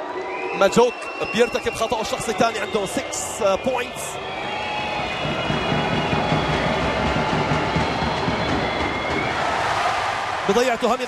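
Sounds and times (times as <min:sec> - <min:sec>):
high whistles: 0:00.0 - 0:10.3
arena crowd din: 0:00.0 - 0:11.0.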